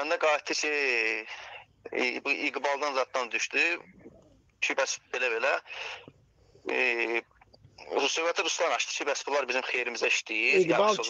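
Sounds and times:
man speaking over phone line: 0.0s - 3.9s, 4.6s - 6.0s, 6.7s - 7.2s, 7.9s - 11.0s.

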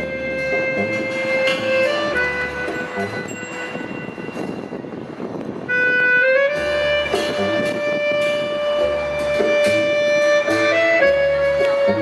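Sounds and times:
acoustic folk band playing: 0.0s - 12.0s.

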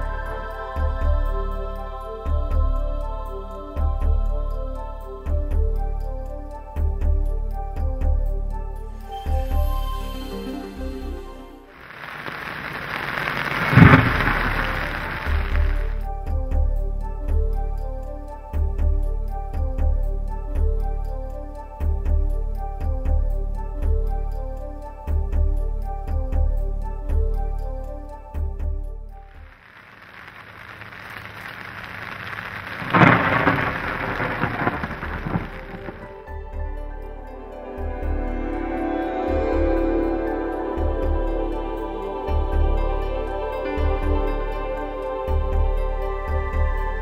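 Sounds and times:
heavy rain falling: 11.7s - 16.0s, 29.3s - 36.6s
steady rain: 11.7s - 17.6s, 29.3s - 47.0s
loud thunderclap: 11.8s - 16.0s, 30.9s - 36.3s.

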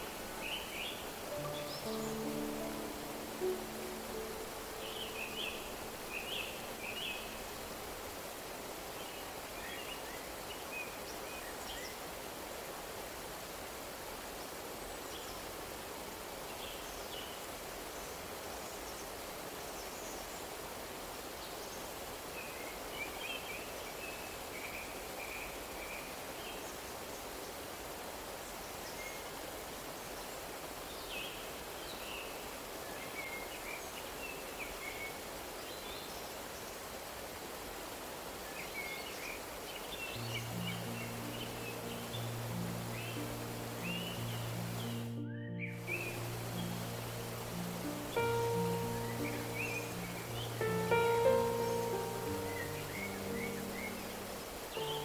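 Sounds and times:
small birds chirping: 0.0s - 8.0s, 38.4s - 55.0s
slow low music notes: 0.0s - 8.2s, 40.2s - 55.0s
stream rushing over rocks: 0.0s - 55.0s.

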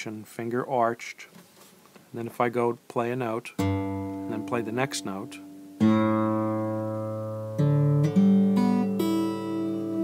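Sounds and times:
acoustic guitar plucked notes: 3.5s - 10.0s.

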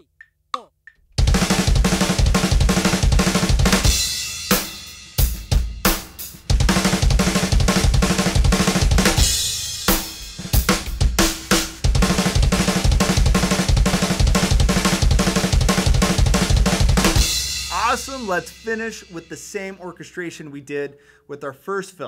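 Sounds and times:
rapid kick drum strokes: 1.2s - 20.0s
snare and tom strokes: 9.9s - 20.0s.

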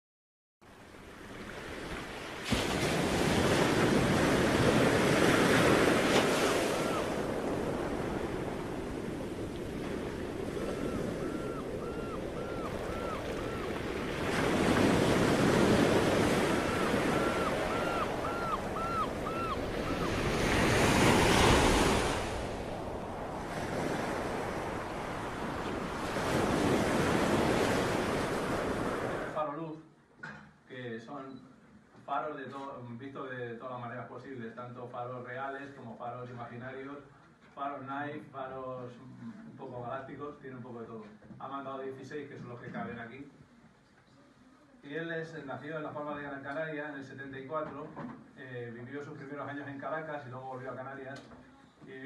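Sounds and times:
wind: 0.6s - 30.5s
sea waves washing: 0.8s - 29.4s.

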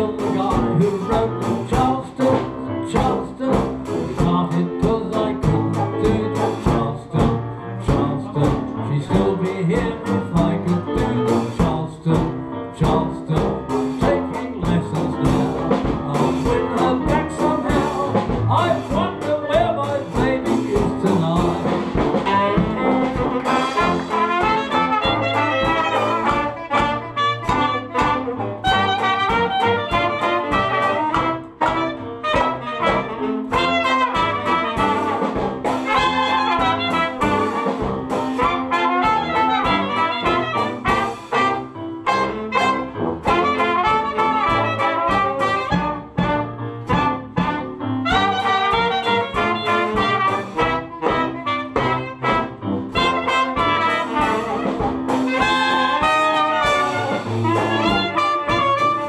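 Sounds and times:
clarinet: 0.0s - 59.0s
jazz band playing: 0.0s - 59.0s
trumpet: 0.0s - 59.0s.

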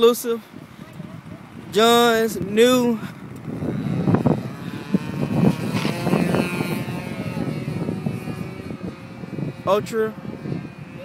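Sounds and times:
model airplane engine and propeller: 0.0s - 11.0s
wind noise on microphone: 0.0s - 11.0s.

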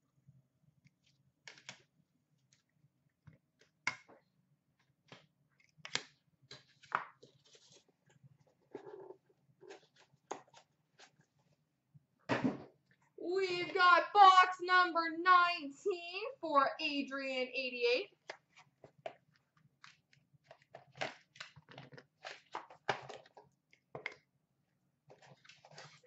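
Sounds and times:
hands handling cards and plastic: 4.8s - 9.0s, 9.6s - 11.6s, 18.2s - 24.3s, 25.1s - 26.0s.

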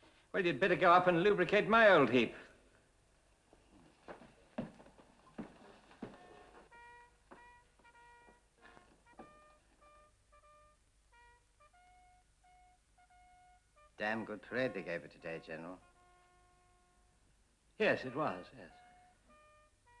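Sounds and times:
soft wind instrument melody: 6.0s - 20.0s.

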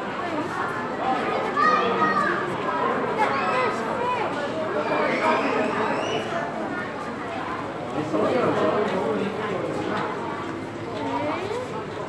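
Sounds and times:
chatter of voices: 0.0s - 12.0s
high-pitched children's voices: 0.4s - 7.2s, 11.0s - 12.0s.

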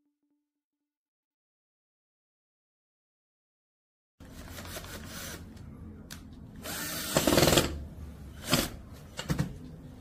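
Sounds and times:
cordless drill on wood: 6.6s - 7.7s.

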